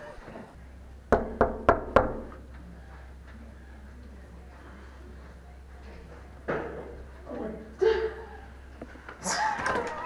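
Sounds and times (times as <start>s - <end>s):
knocks on a door: 1.1s - 2.3s.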